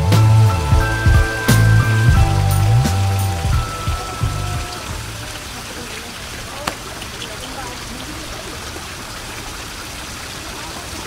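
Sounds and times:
running water gurgling: 0:00.0 - 0:11.0.

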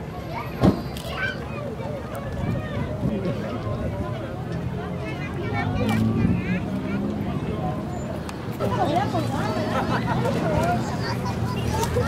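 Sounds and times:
outdoor crowd chatter: 0:00.0 - 0:12.0.

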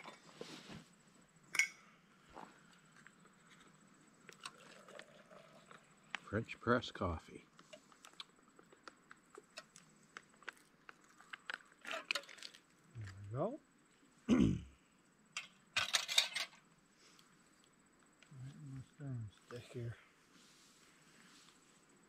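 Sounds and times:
camp cookware clinking: 0:01.5 - 0:01.9, 0:15.4 - 0:16.6
wordless voice sounds: 0:18.3 - 0:20.0.

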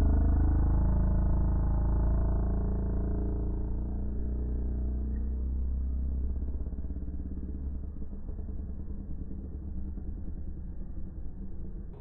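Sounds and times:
deep hum: 0:00.0 - 0:12.0.

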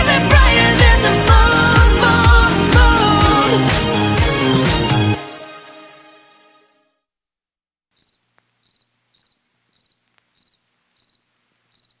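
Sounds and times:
crickets chirping: 0:08.0 - 0:12.0.

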